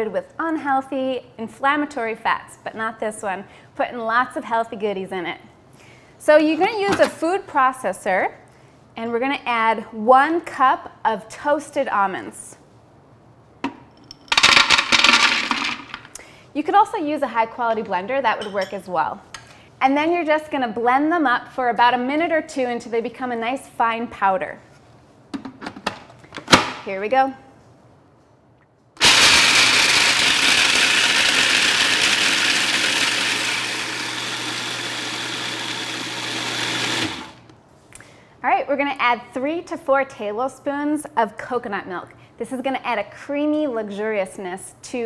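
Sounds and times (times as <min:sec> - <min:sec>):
food processor grinding nuts: 0:14.3 - 0:15.9, 0:29.0 - 0:37.5
almonds clattering into a bowl: 0:14.3 - 0:16.0.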